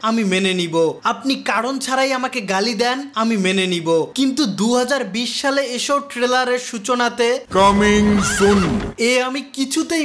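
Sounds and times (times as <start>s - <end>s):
man speaking: 0.0s - 10.0s
horse whinnying: 7.6s - 9.0s.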